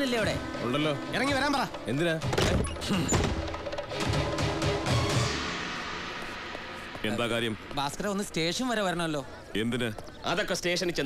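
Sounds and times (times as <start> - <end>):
dramatic film music with drums: 0.0 - 7.0.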